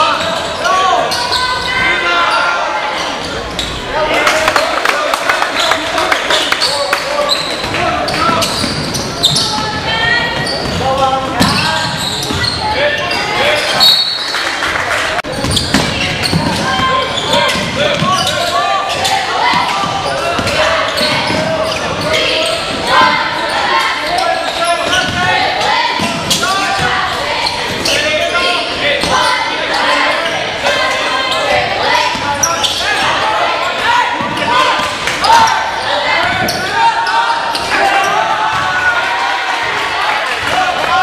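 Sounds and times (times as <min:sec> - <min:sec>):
voices calling and talking: 0:00.0 - 0:41.0.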